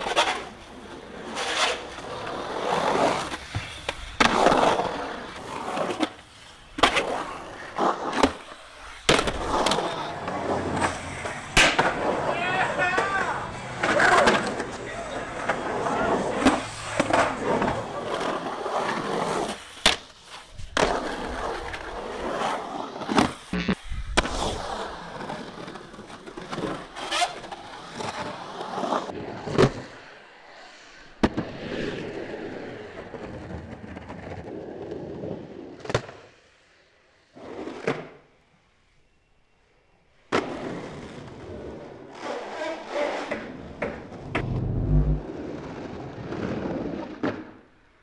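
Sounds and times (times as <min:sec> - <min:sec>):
skateboard wheels rolling on concrete: 0:00.0 - 0:48.0.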